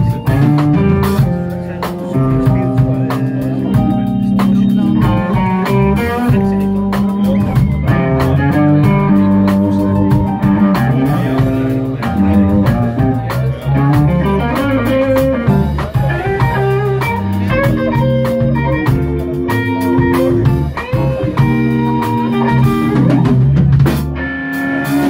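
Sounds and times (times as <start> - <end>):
bass-heavy band backing: 0.0 - 25.0
electric blues guitar lead: 0.0 - 25.0.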